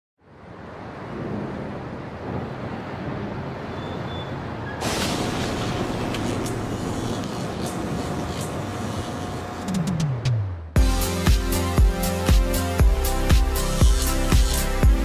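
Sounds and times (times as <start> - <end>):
wash of noise: 0.2 - 9.6
music: 9.6 - 15.0.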